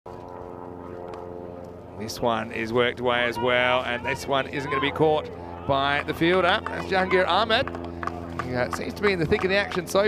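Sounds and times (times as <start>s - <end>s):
steady engine drone: 0.1s - 10.0s.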